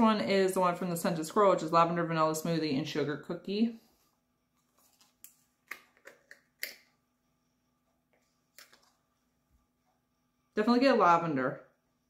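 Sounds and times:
plastic packaging crinkling: 4.6s - 6.2s.

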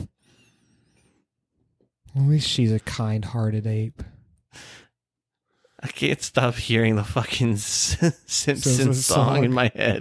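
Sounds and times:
person breathing: 4.5s - 5.8s.

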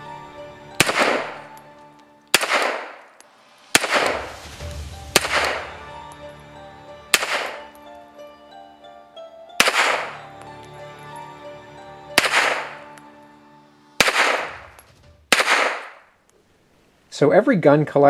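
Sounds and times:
background music: 0.0s - 15.8s
pistol shots with ringing echo: 0.8s - 1.7s, 2.3s - 3.2s, 3.8s - 4.4s, 5.1s - 6.3s, 7.1s - 7.8s, 9.6s - 10.4s, 12.2s - 13.0s, 14.0s - 16.1s.

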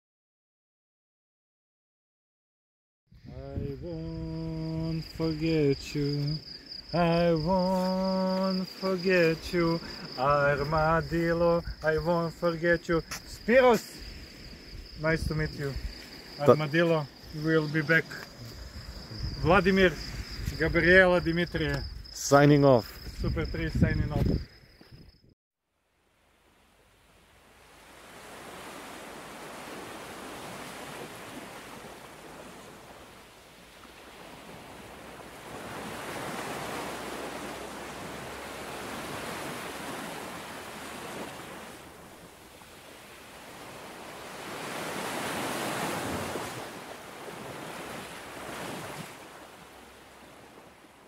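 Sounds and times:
sea waves washing onto beach: 3.8s - 20.7s, 27.4s - 51.0s.

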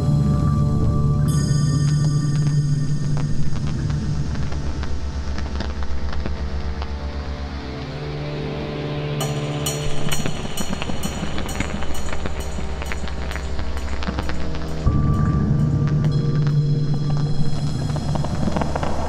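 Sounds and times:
low pulsing synth bass: 0.0s - 8.3s, 9.8s - 19.0s
crisp hi-hat ticks: 9.2s - 14.9s.

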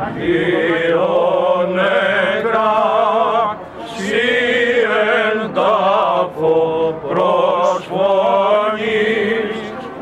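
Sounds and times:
men chanting a hymn: 0.0s - 10.0s.

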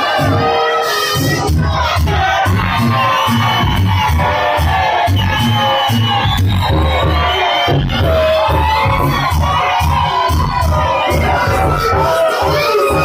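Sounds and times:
crowd shouting and cheering: 0.0s - 13.0s
loud dancehall music: 0.0s - 13.0s.

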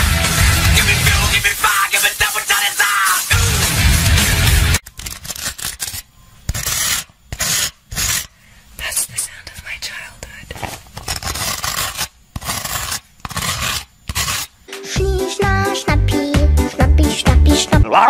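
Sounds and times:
scratching against microphone: 4.9s - 8.3s, 10.3s - 14.5s
soft whispering: 8.8s - 10.6s.

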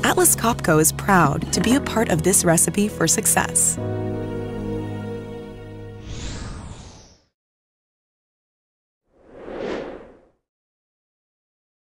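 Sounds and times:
whoosh: 6.0s - 7.3s, 9.2s - 10.4s.

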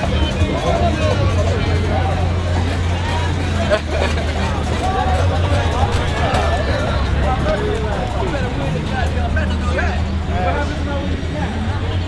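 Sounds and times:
overlapping voices and chatter: 0.0s - 12.0s.

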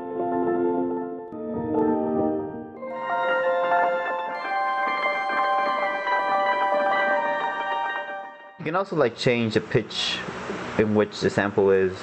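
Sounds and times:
sustained synth pad chords: 1.3s - 8.6s.

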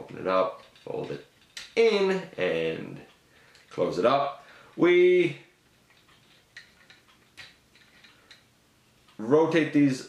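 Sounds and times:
plastic toy parts clicking: 0.6s - 1.9s, 5.8s - 8.5s.

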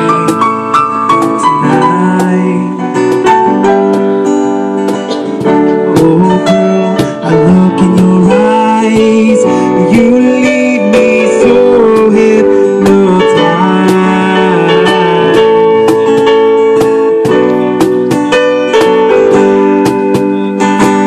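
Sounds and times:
sharp cajon hits: 0.0s - 9.3s, 9.9s - 21.0s
stage piano chords: 0.0s - 21.0s
strummed acoustic guitar: 0.0s - 21.0s.

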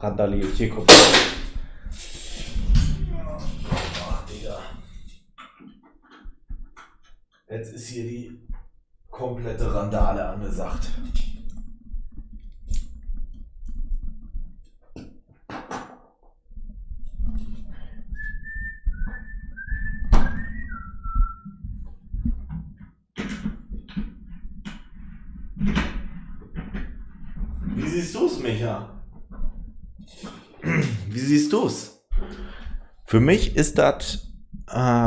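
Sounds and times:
microphone handling knocks and clicks: 8.3s - 8.8s, 9.6s - 27.9s, 28.9s - 30.3s
whistled notes: 18.0s - 21.6s.

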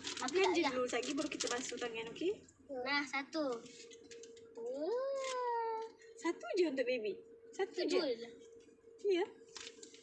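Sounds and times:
child vocalizing: 4.6s - 5.9s.

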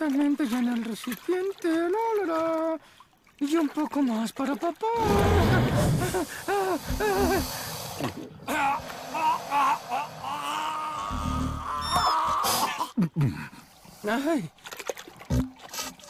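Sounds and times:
character wordless vocal sounds: 0.0s - 13.4s.

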